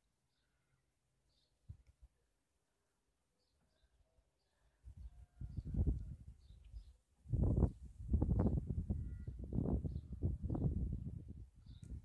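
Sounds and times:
wind buffeting microphone: 4.9s - 12.0s.

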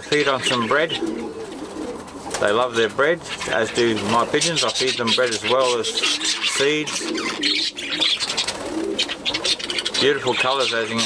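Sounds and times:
budgerigars chirping: 0.0s - 1.5s, 2.6s - 11.0s
pigeons cooing: 0.0s - 11.0s.

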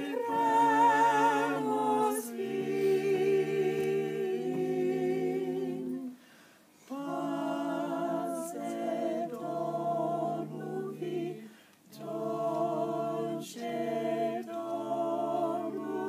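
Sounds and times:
vocal group singing a cappella: 0.0s - 16.0s.

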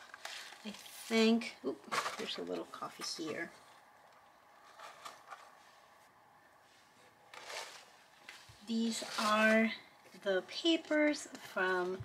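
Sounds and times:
paper rustling: 4.6s - 5.8s, 7.3s - 9.8s.

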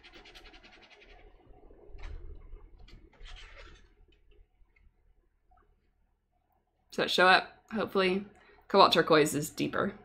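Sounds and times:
brush scratching on paper: 0.0s - 1.4s.

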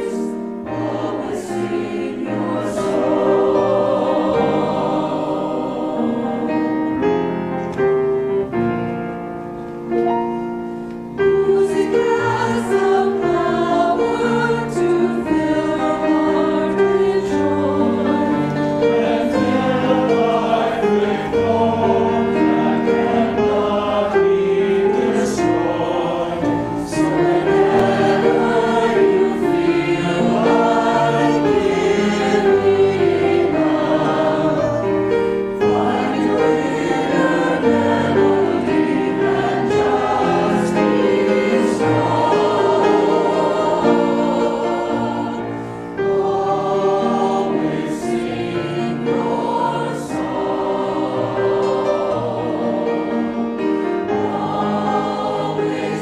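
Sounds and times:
mixed choir singing: 0.0s - 9.1s, 10.3s - 56.0s
piano accompaniment: 0.0s - 56.0s.

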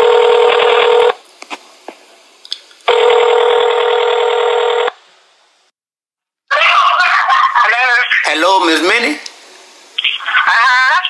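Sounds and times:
telephone ringback tone: 0.0s - 1.1s, 2.9s - 4.9s
voice on telephone line: 6.5s - 8.6s, 10.0s - 11.0s.

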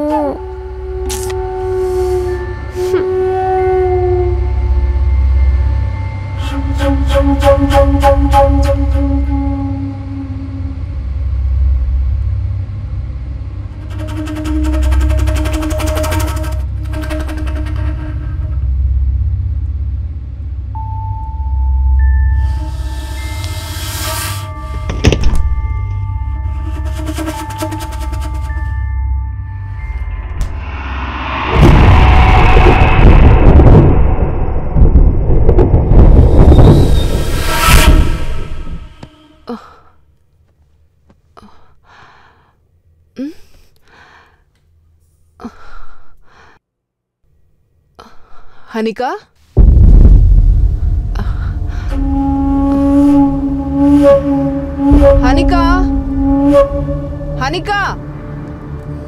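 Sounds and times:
film score with pulsing bass: 0.0s - 40.1s, 49.6s - 59.0s
sharp musical hit: 29.7s - 33.8s.

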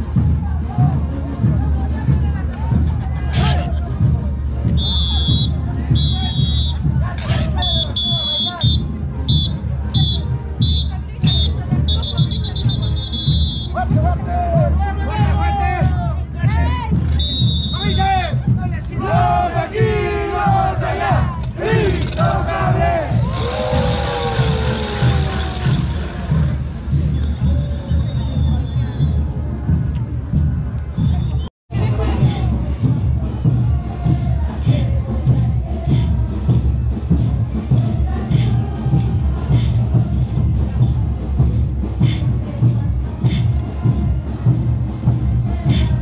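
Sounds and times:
crowd noise: 0.0s - 46.0s
pulsing low beat: 0.0s - 46.0s
men shouting and whooping: 19.0s - 26.6s
brass band playing: 19.0s - 28.6s.

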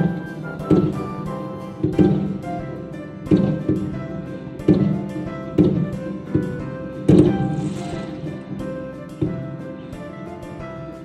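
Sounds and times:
music with sustained tones: 0.0s - 11.0s
heavy percussive hits: 6.3s - 9.4s.

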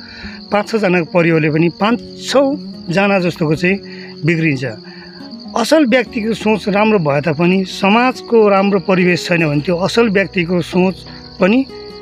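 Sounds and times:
insects droning: 0.0s - 12.0s
man speaking: 0.5s - 4.8s, 5.5s - 11.7s.

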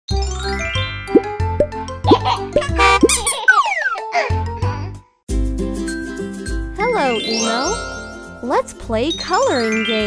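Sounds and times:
cheerful children's jingle: 6.0s - 10.0s.

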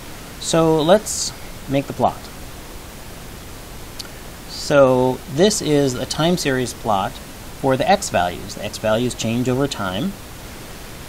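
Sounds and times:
microphone hiss: 0.0s - 11.0s
man speaking: 0.4s - 2.3s, 4.5s - 10.2s.

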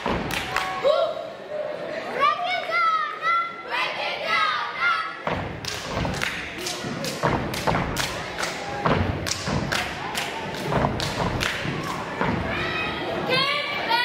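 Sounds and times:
rhythmic stomps and claps: 0.0s - 0.8s, 5.2s - 12.6s.

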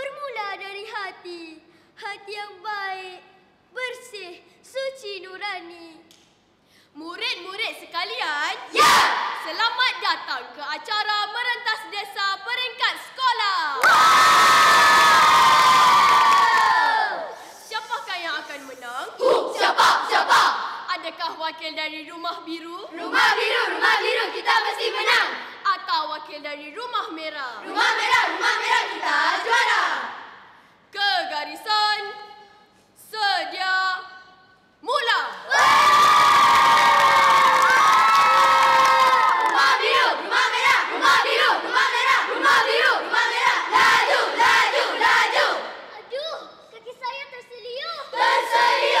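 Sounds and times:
children chanting in unison: 19.1s - 20.8s, 23.0s - 25.5s, 27.6s - 30.2s, 39.0s - 45.9s, 48.1s - 49.0s.

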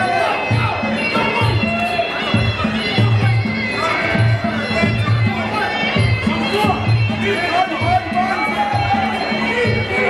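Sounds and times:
crowd shouting and cheering: 0.0s - 10.0s.

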